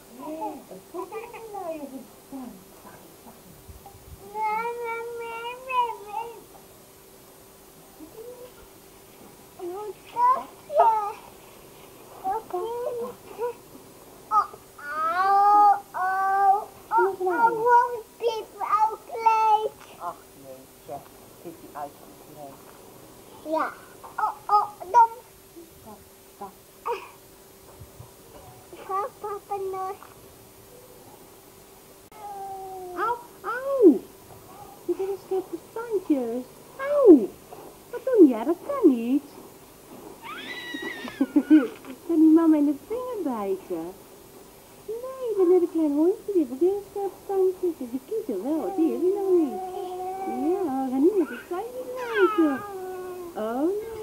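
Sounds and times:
woman baby talk: 0:12.3 - 0:13.6, 0:14.3 - 0:19.7, 0:32.1 - 0:37.4, 0:44.9 - 0:54.0
baby cooing: 0:14.3 - 0:17.6, 0:32.1 - 0:33.2, 0:48.6 - 0:54.0
child squealing and calling: 0:32.1 - 0:33.2, 0:40.2 - 0:41.7, 0:48.7 - 0:53.3
baby squealing: 0:40.2 - 0:41.7.

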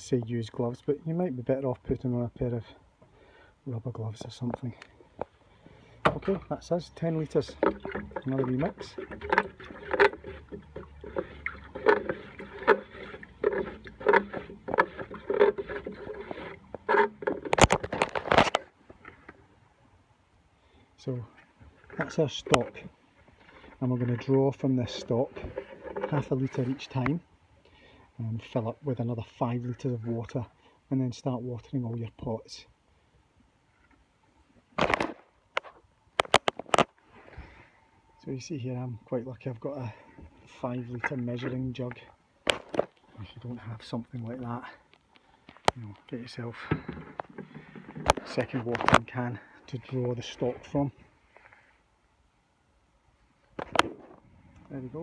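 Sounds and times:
water sloshing in watering can: 0:06.0 - 0:19.3.

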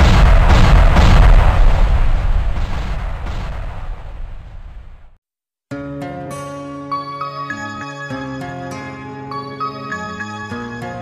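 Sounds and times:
deep booming rumble: 0:00.0 - 0:05.2.

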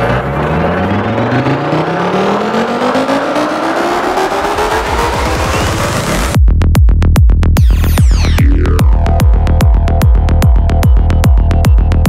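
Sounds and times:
rising synth sweep: 0:00.0 - 0:06.4, 0:07.6 - 0:12.0
deep bass: 0:00.0 - 0:12.0.

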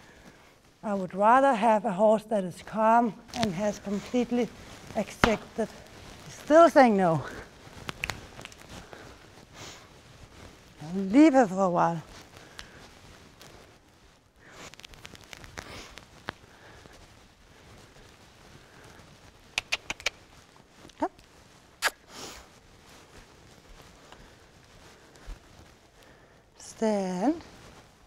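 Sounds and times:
footsteps in straw: 0:03.2 - 0:19.5, 0:20.1 - 0:28.0
sharp clicks: 0:19.6 - 0:20.2.

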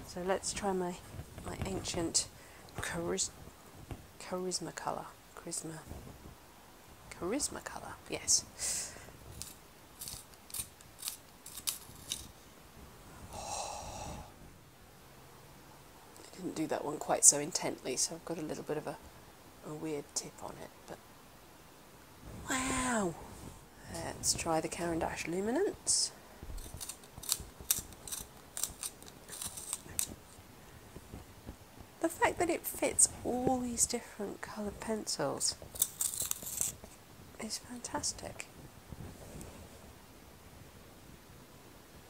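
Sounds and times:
pencil sharpener shaving wood: 0:09.4 - 0:12.3, 0:26.6 - 0:30.1, 0:35.8 - 0:36.8.

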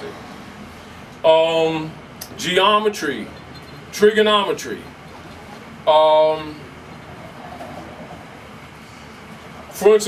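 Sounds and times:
room noise hum and hiss: 0:00.0 - 0:10.0.

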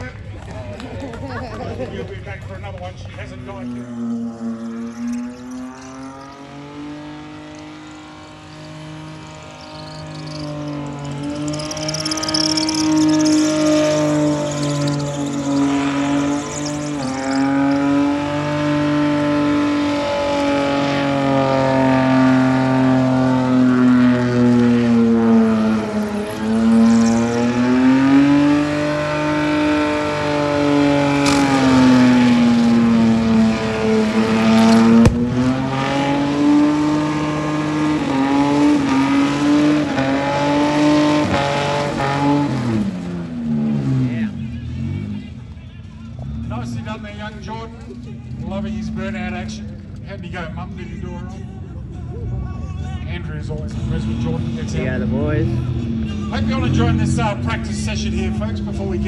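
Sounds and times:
car engine revving high: 0:03.2 - 0:45.3
tyres spinning: 0:03.6 - 0:18.7
sharp crack: 0:34.8 - 0:35.6.

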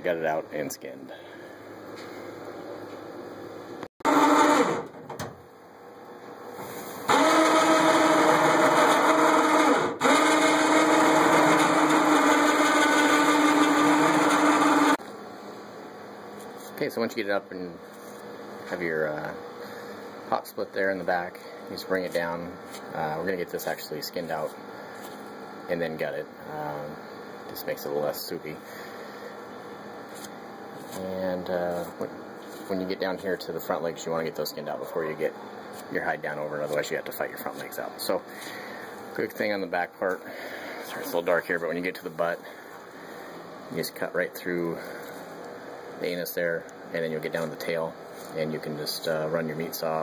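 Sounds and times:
electric winch motor running: 0:04.0 - 0:04.9, 0:07.1 - 0:15.0.

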